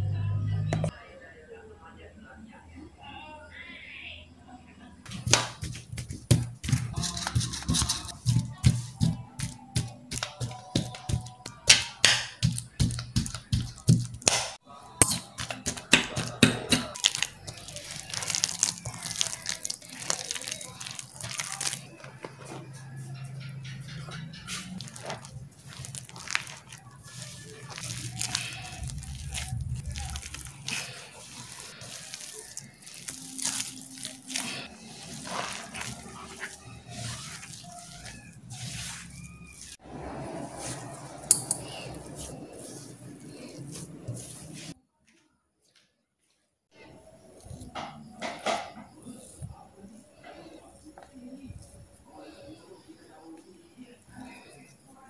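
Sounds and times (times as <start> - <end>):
hands kneading soft dough: 5.1 - 44.8, 46.8 - 55.0.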